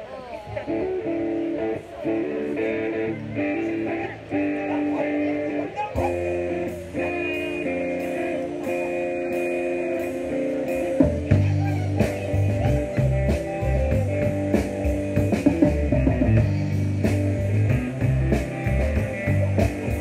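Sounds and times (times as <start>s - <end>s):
bass guitar: 0.0s - 20.0s
electric guitar strumming chords: 0.0s - 20.0s
drums playing a steady beat: 0.5s - 20.0s.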